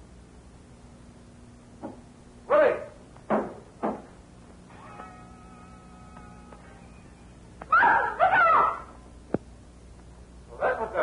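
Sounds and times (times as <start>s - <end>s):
person crying out startled: 7.7s - 9.0s.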